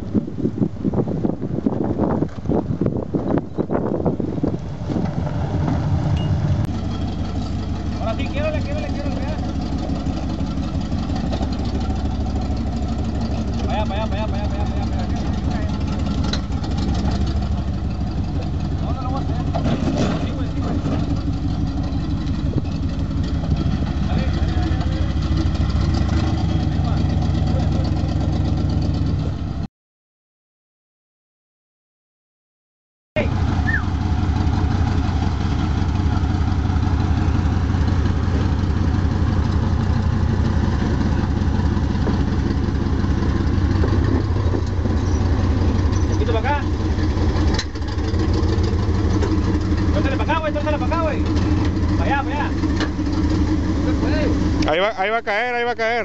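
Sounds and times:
wind buffeting microphone: 0.0 - 6.7
engine running at low revs: 0.0 - 29.7, 33.2 - 56.0.

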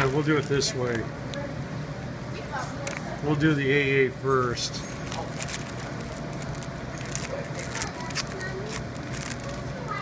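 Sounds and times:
steady low hum: 0.0 - 10.0
wrapper crackling being torn open: 5.0 - 9.7.

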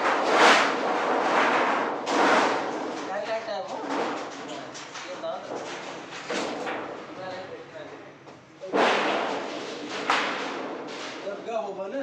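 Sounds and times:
workshop noise: 0.0 - 12.0
metal shear crash ringing: 8.6 - 11.5.

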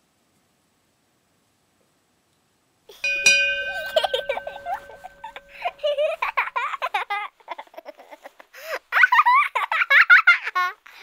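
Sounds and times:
bell-like chime ringing: 3.0 - 6.3.

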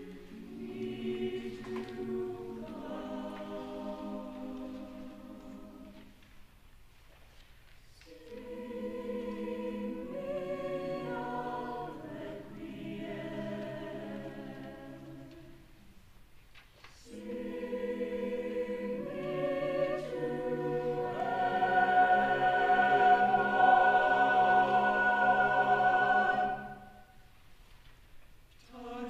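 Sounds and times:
choir singing sustained chords: 0.0 - 6.1, 8.0 - 15.8, 17.0 - 27.2, 28.6 - 29.0.

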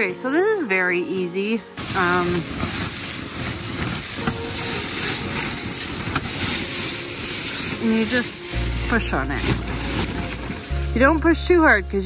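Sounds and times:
tarp rustling: 0.0 - 12.0
snow sliding down tarp roof: 0.2 - 12.0.

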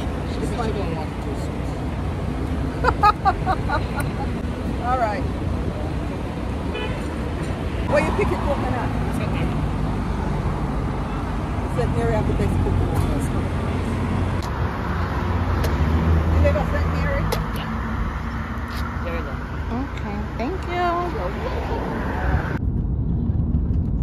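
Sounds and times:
voices: 0.0 - 13.8, 15.6 - 18.0, 18.6 - 22.6.

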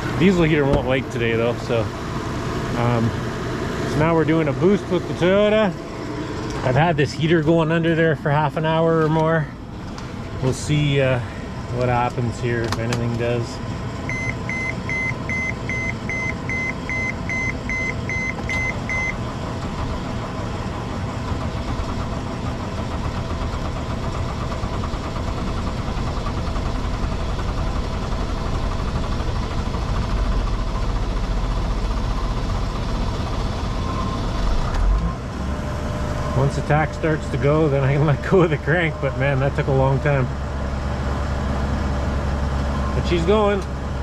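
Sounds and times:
diesel engine cranking: 0.0 - 44.0
dashboard warning chime beeping: 14.1 - 19.2.

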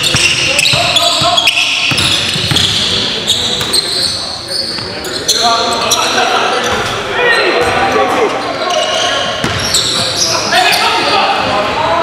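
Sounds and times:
players' voices echoing: 0.0 - 12.0.

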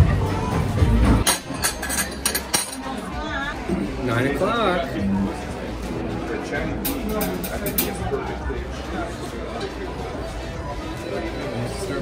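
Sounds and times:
loud music: 0.0 - 1.5
murmur of voices: 0.0 - 12.0
dishes and cutlery clinking: 1.2 - 3.2, 6.7 - 8.2.

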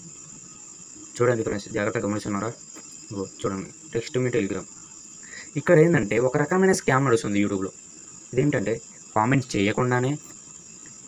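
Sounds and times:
high-pitched whine: 0.0 - 11.0
man speaking: 1.2 - 4.6.

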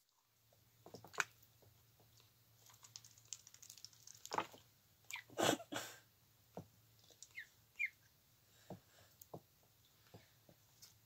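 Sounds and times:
ducklings splashing in water: 0.8 - 5.6, 7.0 - 8.0.

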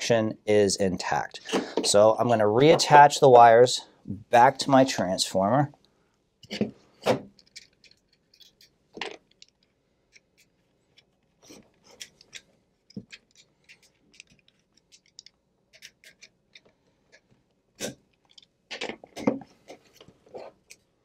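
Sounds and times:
screwdriver clicks and scrapes: 7.4 - 8.7, 9.3 - 17.3.

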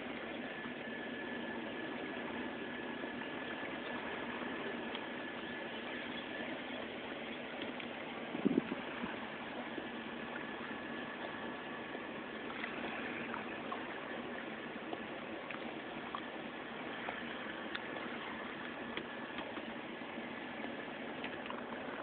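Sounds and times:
lakeshore ambience hiss: 0.0 - 22.0.

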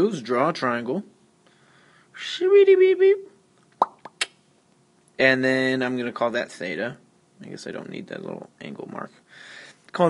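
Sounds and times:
short clicks or pops: 3.6 - 4.4.

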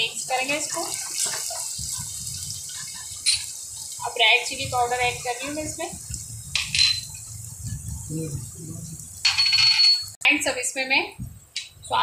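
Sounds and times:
garlic and chillies sizzling in oil: 0.0 - 12.0.

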